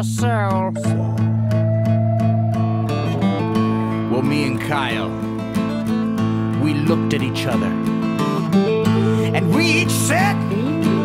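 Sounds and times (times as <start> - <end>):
guitars strumming chords: 0.0 - 11.0.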